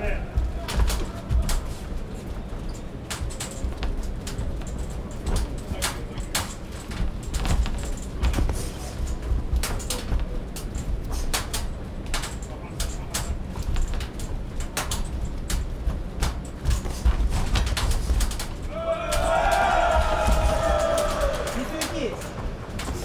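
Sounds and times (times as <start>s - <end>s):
footwork on ring canvas: 0.0s - 23.0s
low arena rumble: 0.0s - 23.0s
people shouting: 18.6s - 22.4s.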